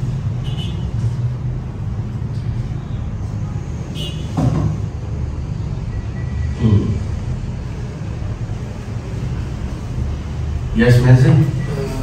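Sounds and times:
murmur of a voice: 10.7s - 12.0s.

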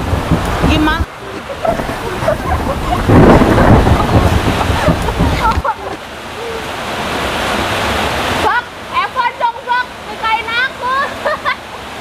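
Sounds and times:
heavy rain falling: 0.0s - 12.0s.

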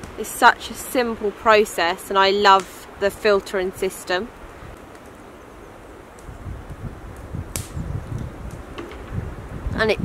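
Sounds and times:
wind buffeting microphone: 5.6s - 10.0s.

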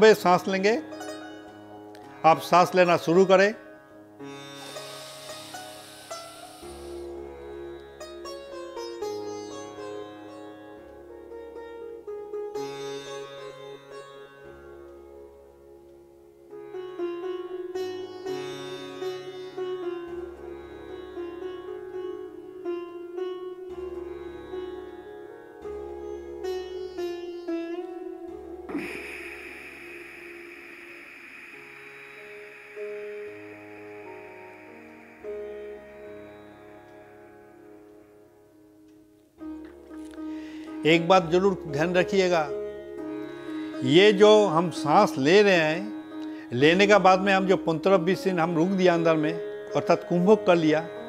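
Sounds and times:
plucked sitar-like notes: 0.0s - 51.0s
steady drone: 4.5s - 7.2s, 28.6s - 37.4s.

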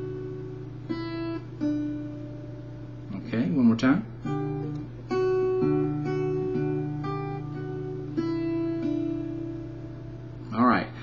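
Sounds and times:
acoustic guitar fingerpicked: 0.0s - 10.6s.

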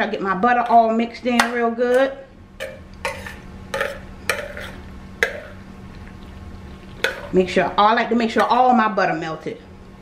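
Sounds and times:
metal spoon scraping glass bowl: 2.7s - 5.6s.

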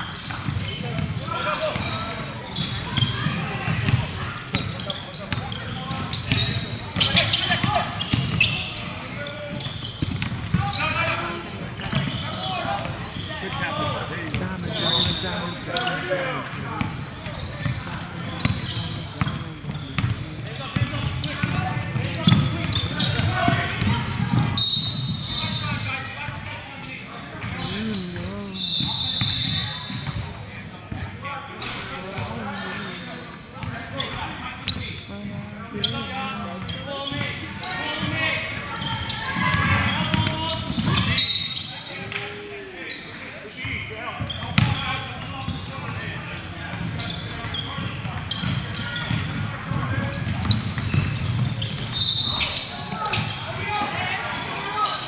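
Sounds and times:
indistinct voices: 27.4s - 28.9s.

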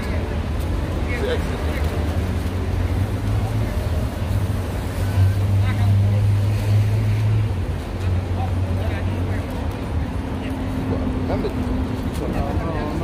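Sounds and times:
faint voices: 0.0s - 13.0s
street noise: 0.0s - 13.0s
vehicle engine drone: 0.0s - 13.0s.

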